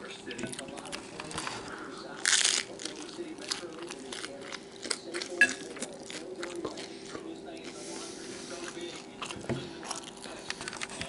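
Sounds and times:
crunchy chewing: 0:00.3 - 0:11.0.

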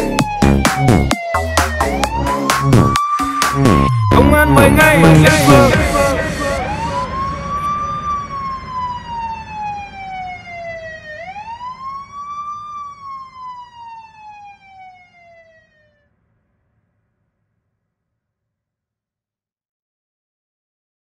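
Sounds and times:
police siren wailing: 0:00.0 - 0:16.0.

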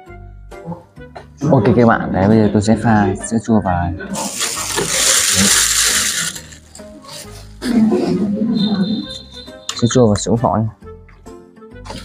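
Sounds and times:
plastic bag rustling: 0:04.2 - 0:07.5.

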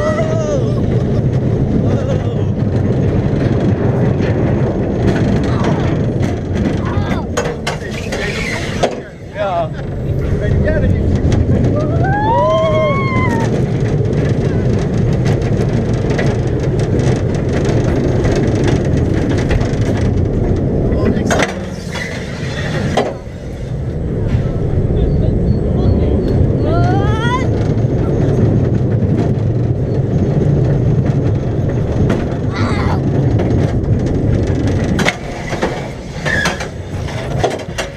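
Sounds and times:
roller coaster wheels rumbling: 0:00.0 - 0:37.9
short rising squeal: 0:07.9 - 0:08.8, 0:21.6 - 0:25.7.

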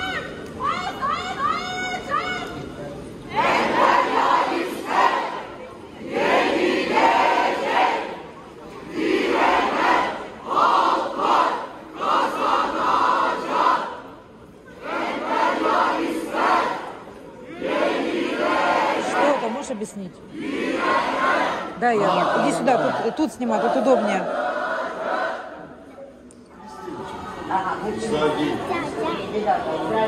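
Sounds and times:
crowd chanting slogans: 0:03.3 - 0:25.9.

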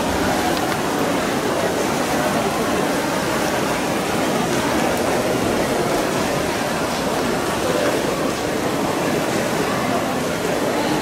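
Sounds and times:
spectator crowd noise: 0:00.0 - 0:11.0.

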